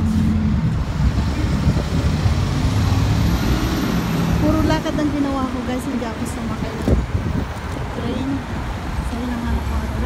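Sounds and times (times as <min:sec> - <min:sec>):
road noise from passing vehicles: 0:00.0 - 0:10.0.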